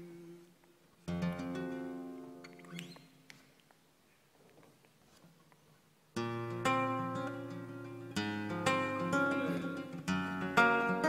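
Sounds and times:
flamenco acoustic guitar: 0:00.0 - 0:03.2, 0:06.1 - 0:11.0.

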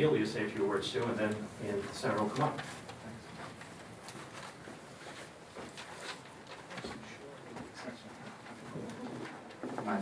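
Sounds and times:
shuffling sounds: 0:00.4 - 0:10.0.

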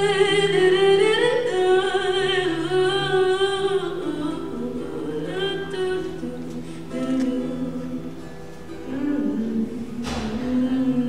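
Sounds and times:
acoustic guitar: 0:00.0 - 0:11.0
person singing with vibrato: 0:00.0 - 0:11.0.

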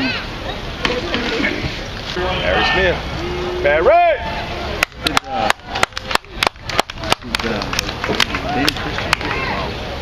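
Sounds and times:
people talking: 0:00.0 - 0:10.0
hand claps: 0:04.8 - 0:09.4.

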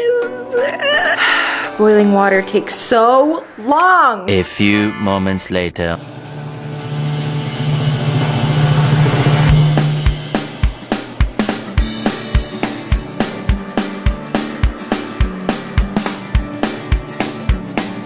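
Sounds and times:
sustained low synth note: 0:01.8 - 0:12.5.

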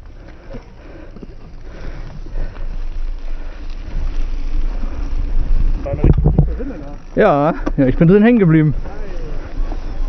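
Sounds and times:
bike tyres rolling on gravel: 0:00.0 - 0:10.0
wind buffeting microphone: 0:01.1 - 0:07.2.

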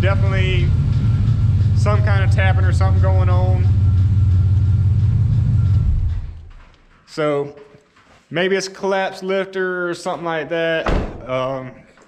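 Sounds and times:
truck engine idling with tapping: 0:00.0 - 0:06.6.

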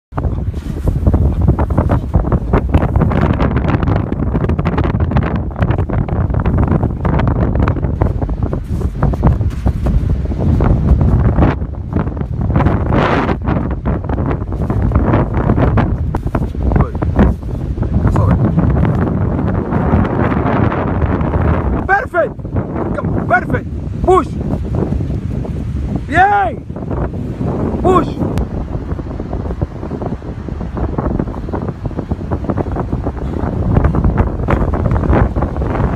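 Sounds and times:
strong wind buffeting microphone: 0:00.1 - 0:35.9.

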